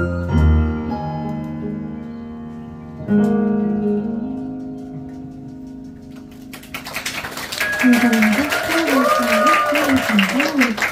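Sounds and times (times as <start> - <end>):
keyboard piano chords: 0.0 - 9.4
audience applause: 6.3 - 10.9.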